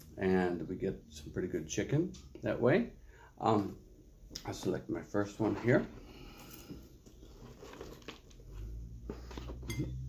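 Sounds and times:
rustling and handling: 0:04.5 - 0:10.0.

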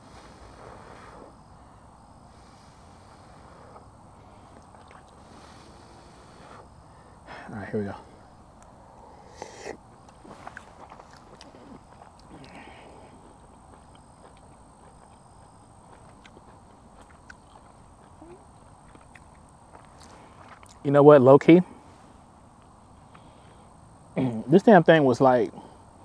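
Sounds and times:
mouth clicks and smacks: 0:04.5 - 0:05.2, 0:13.3 - 0:20.8
person chewing food: 0:04.5 - 0:05.5, 0:09.4 - 0:20.8
faint steady high tone: 0:18.1 - 0:18.6.

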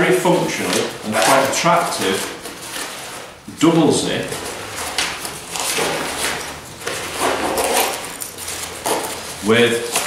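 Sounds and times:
fabric rustles and scrapes: 0:00.3 - 0:03.4, 0:04.2 - 0:10.0.

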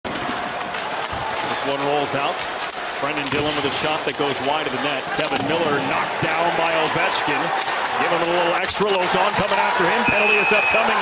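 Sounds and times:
skates and sticks on ice: 0:00.1 - 0:10.3
crowd hum: 0:00.1 - 0:11.0
commentator speaking: 0:03.0 - 0:11.0.

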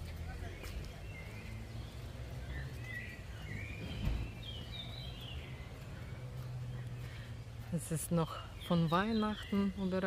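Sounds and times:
songbirds chirping: 0:00.0 - 0:10.0.

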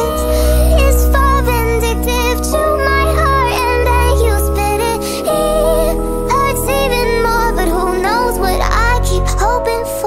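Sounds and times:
heavy bass: 0:00.0 - 0:09.6
high singing voice: 0:00.0 - 0:10.0
sped-up pop music: 0:00.0 - 0:10.0.

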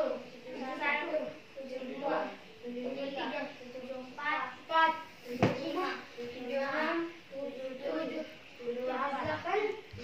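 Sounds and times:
children's voices: 0:00.0 - 0:10.0.

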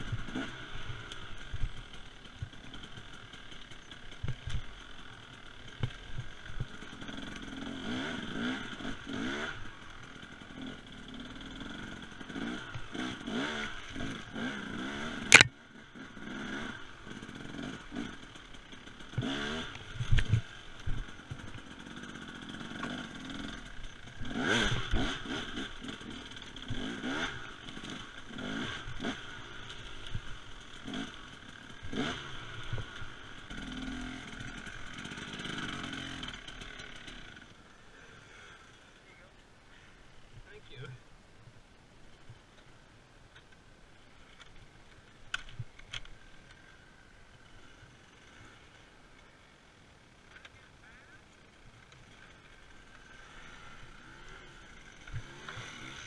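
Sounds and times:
motorcycle revving: 0:00.0 - 0:39.0, 0:44.2 - 0:56.0
clattering from motorcycle: 0:01.0 - 0:07.6.

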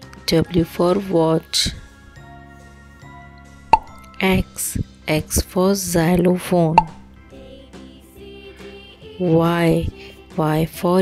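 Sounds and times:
soft background music: 0:00.0 - 0:11.0
short pop sound effect: 0:03.7 - 0:04.0.

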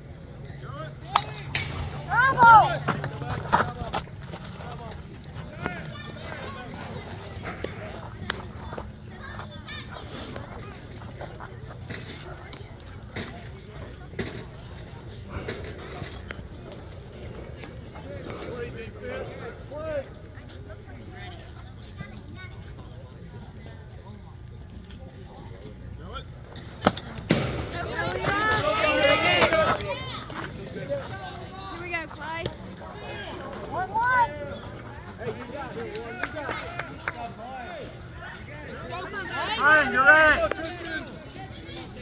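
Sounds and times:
scattered voices: 0:00.0 - 0:42.0
people shouting: 0:01.9 - 0:02.9.

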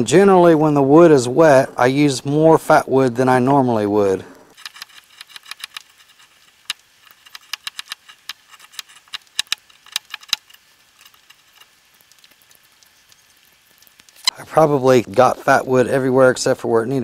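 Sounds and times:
knife scraping wood: 0:04.5 - 0:11.6
faint ticks: 0:04.6 - 0:14.4.

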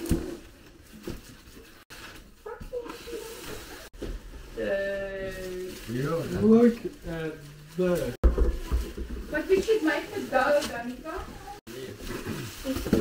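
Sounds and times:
cardboard and plastic rustling: 0:00.0 - 0:13.0.

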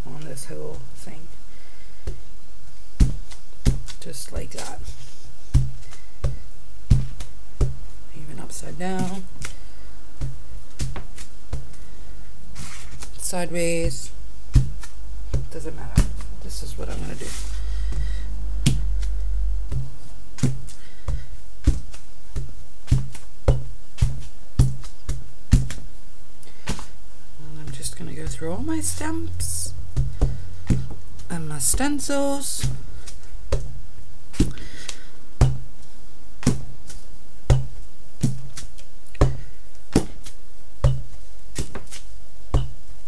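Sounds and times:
rubber stamps tapping on padding: 0:35.4 - 0:35.7, 0:37.5 - 0:38.4, 0:42.5 - 0:42.8.

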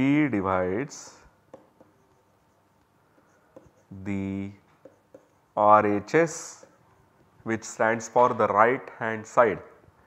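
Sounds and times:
stylus writing on a tablet: 0:00.0 - 0:08.5.

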